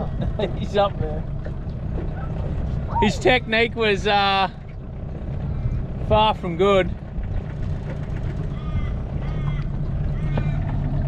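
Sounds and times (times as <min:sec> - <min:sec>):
outboard motor running: 0:00.0 - 0:11.0.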